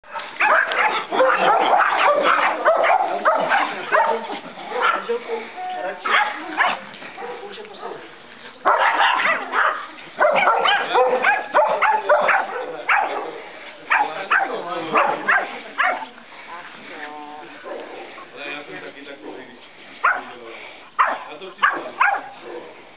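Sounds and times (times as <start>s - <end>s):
small dog barking: 0.1s - 4.2s, 4.8s - 5.0s, 6.1s - 8.0s, 8.7s - 13.3s, 13.9s - 16.0s, 20.0s - 20.3s, 21.0s - 22.4s.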